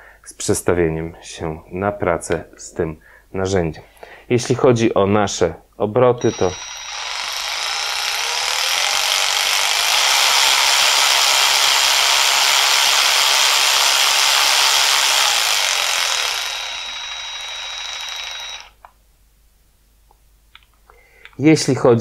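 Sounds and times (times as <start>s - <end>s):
electric ratchet motor whining: 6.2s - 18.8s.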